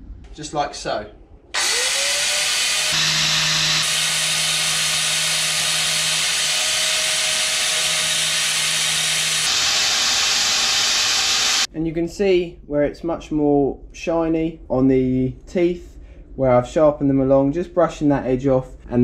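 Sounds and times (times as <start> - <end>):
angle grinder whining: 1.5 - 11.7.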